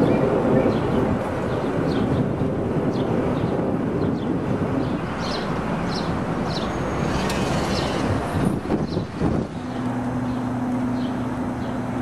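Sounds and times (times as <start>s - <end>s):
steady rumbling background noise: 0.0s - 12.0s.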